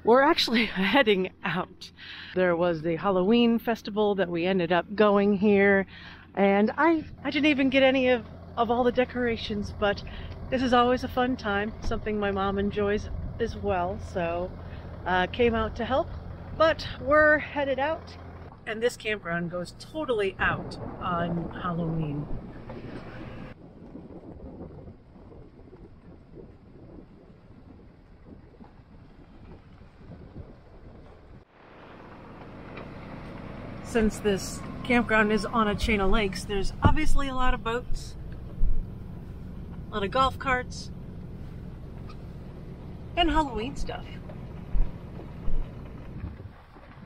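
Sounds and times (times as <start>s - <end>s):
pickup truck rumbling: 0.0s - 47.0s
wind on microphone: 20.2s - 31.4s, 44.6s - 47.0s.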